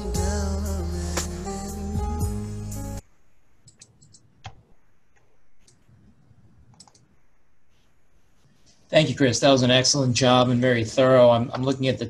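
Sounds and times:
low room noise: 2.4 - 12.0
computer clicks: 3.6 - 4.6, 6.7 - 7.1.

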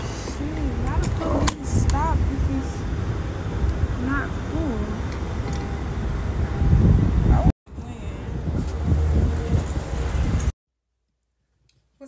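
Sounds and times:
car rumbling: 0.0 - 10.6.

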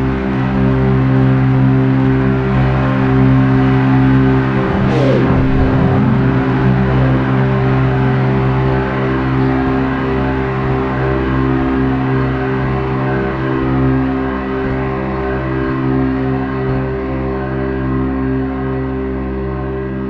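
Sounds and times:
electric guitar drones: 0.0 - 20.0.

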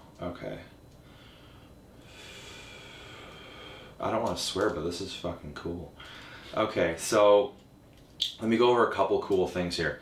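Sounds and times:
person exhaling: 1.1 - 4.0.

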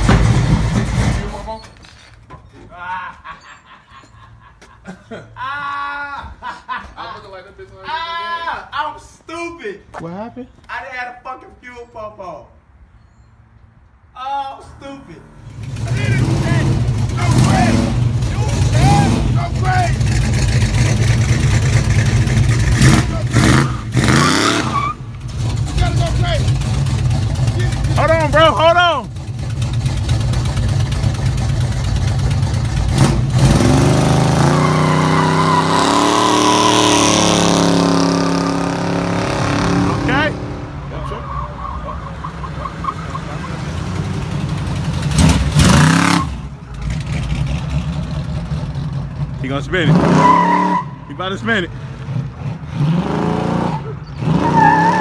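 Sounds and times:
car engine rumbling: 0.0 - 2.6, 12.6 - 55.0.

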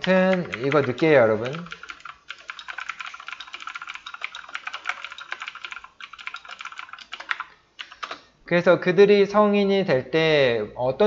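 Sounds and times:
typing on computer keyboard: 0.0 - 8.2.

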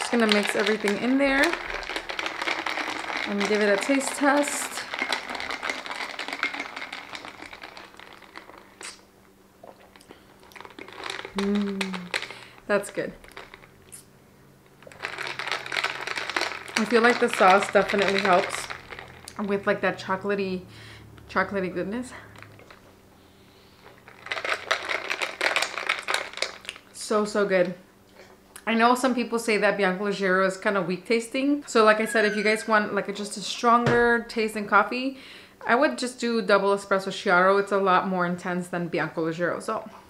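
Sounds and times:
straw stirring iced drink: 0.0 - 9.0, 9.6 - 14.0, 14.7 - 19.7, 22.3 - 22.8, 23.8 - 26.8, 31.7 - 32.8
ice clinking in a glass: 32.0 - 32.8.

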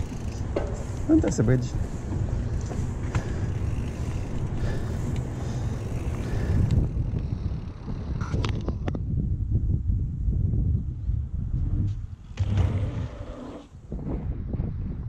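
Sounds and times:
bike tyre and ride noise: 0.0 - 15.0
wind rumbling over microphone: 0.0 - 15.0.

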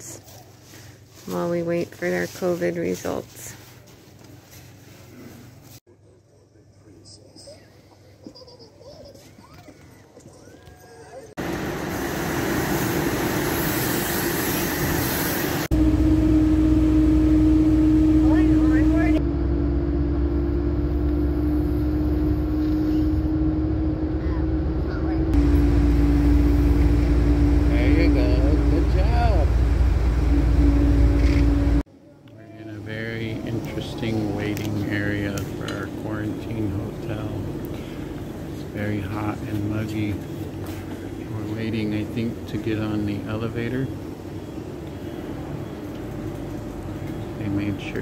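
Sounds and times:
vehicle engine and road rumble: 11.4 - 31.9, 32.8 - 48.0
constant hum: 15.6 - 48.0.

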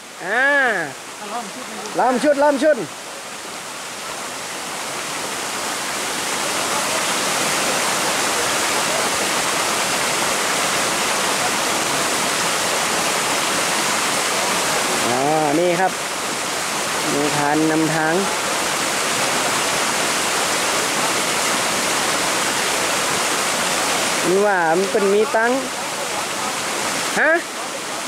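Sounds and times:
stream flowing over rocks: 0.0 - 28.0.

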